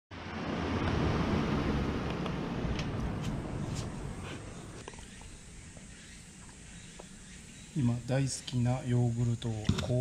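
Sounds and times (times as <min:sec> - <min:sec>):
low rumble: 0:00.1 - 0:05.7
background hiss: 0:02.0 - 0:10.0.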